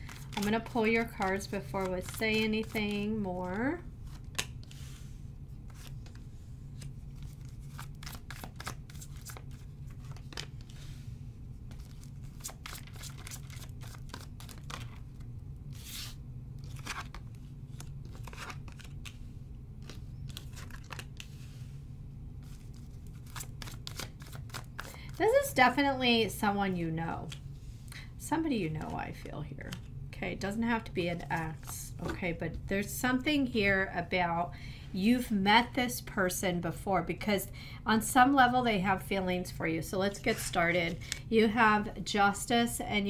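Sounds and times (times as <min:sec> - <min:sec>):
cards shuffling and snapping: 0:00.0 - 0:04.8, 0:05.7 - 0:06.2, 0:06.8 - 0:10.8, 0:11.7 - 0:19.2, 0:19.8 - 0:21.4, 0:22.4 - 0:25.2
steady low hum: 0:00.0 - 0:43.0.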